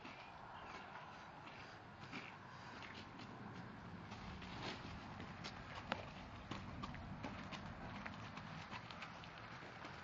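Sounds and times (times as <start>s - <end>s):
horse hooves walking: 0.0s - 10.0s.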